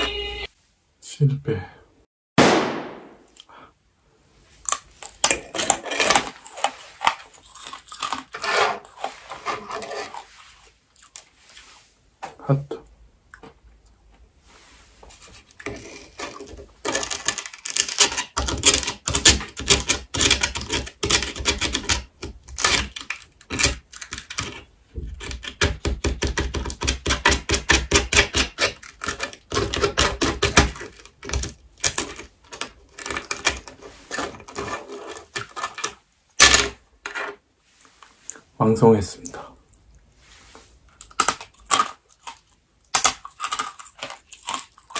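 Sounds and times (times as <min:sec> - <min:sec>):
sugar candy cracking: 0:04.6 - 0:08.4, 0:41.0 - 0:44.9.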